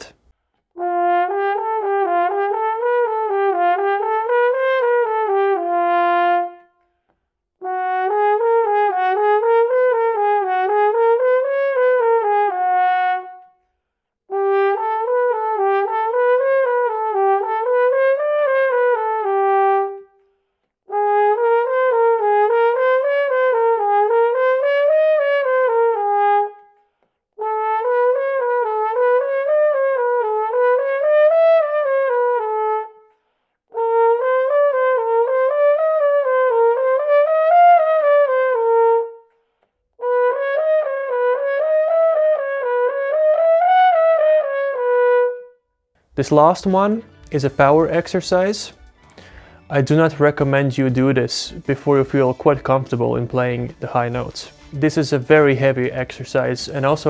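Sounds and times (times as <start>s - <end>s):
french horn playing slurred runs: 0.8s - 6.7s, 14.3s - 20.2s
horn player breathing: 6.8s - 7.4s, 13.6s - 14.3s, 20.1s - 20.8s, 26.7s - 27.4s, 33.0s - 33.7s, 39.2s - 40.0s, 49.0s - 49.7s.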